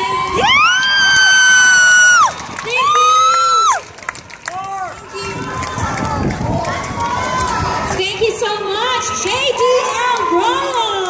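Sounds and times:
crowd talking and calling out: 0:02.2 - 0:11.0.

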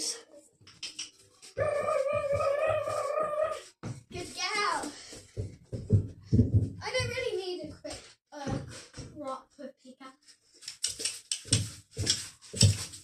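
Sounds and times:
child's drawn-out voice: 0:01.6 - 0:05.0
footfalls on carpet: 0:03.8 - 0:07.3.

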